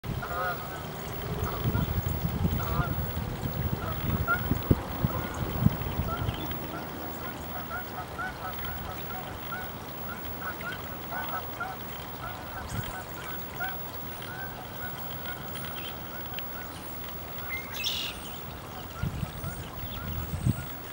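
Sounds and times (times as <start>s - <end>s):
geese honking: 0.1s - 20.9s.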